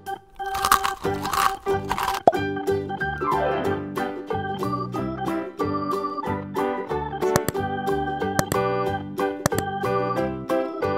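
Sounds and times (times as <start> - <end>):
crunchy biting: 0.1 - 2.4
organ-style background music: 1.9 - 10.9.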